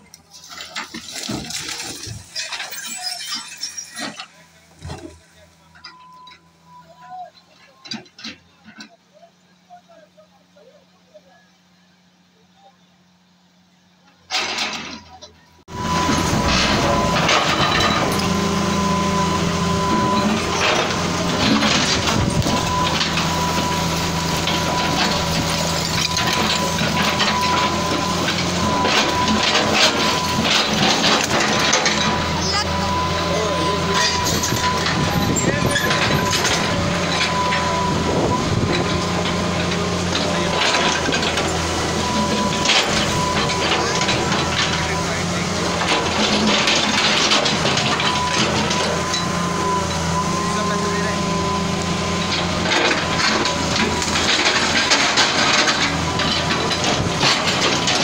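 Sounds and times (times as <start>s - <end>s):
excavator engine running: 0.0s - 58.0s
falling masonry clattering: 0.2s - 5.2s, 14.4s - 50.2s, 52.0s - 58.0s
crowd voices: 1.3s - 58.0s.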